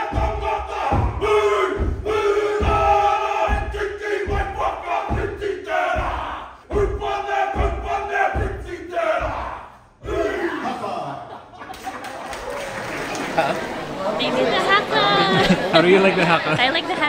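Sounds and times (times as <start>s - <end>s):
men shouting chant in unison: 0.0s - 11.2s.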